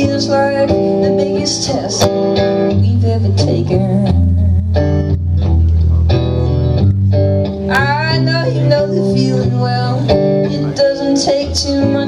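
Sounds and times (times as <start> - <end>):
electric guitar chords: 0.0 - 12.0.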